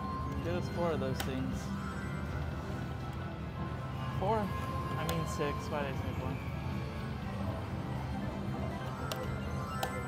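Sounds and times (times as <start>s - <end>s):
slot machine spin music: 0.0s - 10.0s.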